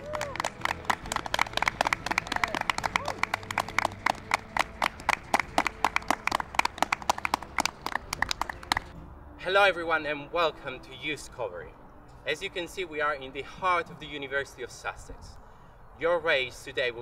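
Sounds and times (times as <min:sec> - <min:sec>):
people clapping: 0:00.0 - 0:08.9.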